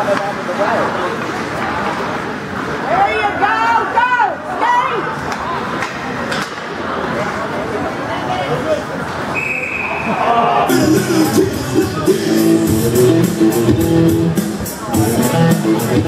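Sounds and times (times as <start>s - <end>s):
steady noise of ice hockey play: 0.0s - 16.0s
shouts echoing: 2.8s - 5.8s, 9.3s - 13.6s
referee's whistle: 9.3s - 10.3s.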